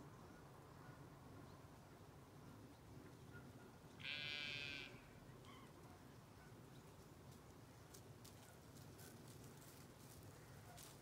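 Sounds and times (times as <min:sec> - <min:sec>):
faint outdoor background: 0:00.0 - 0:11.0
sheep bleating: 0:04.0 - 0:05.0.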